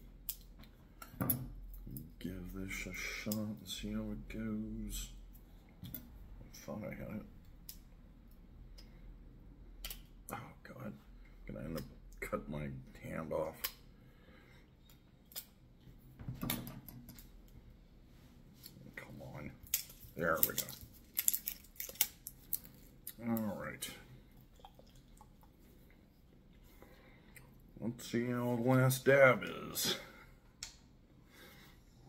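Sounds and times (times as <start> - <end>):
shrink-wrap peeling crackles: 19.6 - 23.8.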